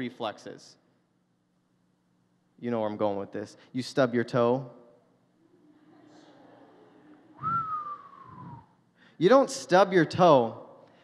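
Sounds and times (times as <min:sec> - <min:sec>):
man whistling a long note: 0:07.4 - 0:08.8
breath noise: 0:07.5 - 0:09.2.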